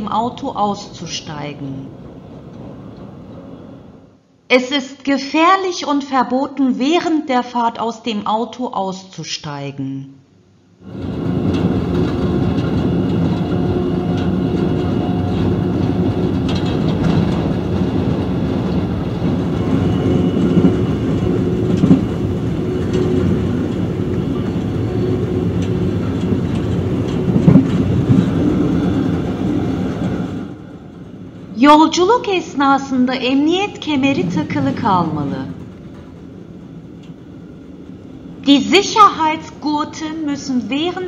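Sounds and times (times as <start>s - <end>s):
train wheels rumbling on rails: 1.8s - 4.1s, 10.8s - 32.3s, 33.1s - 38.4s.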